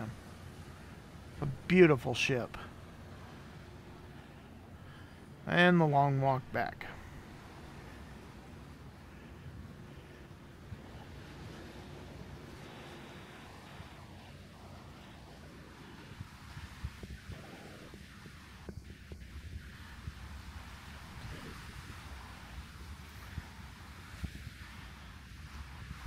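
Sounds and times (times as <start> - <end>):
wind buffeting microphone: 6.5 - 26.0.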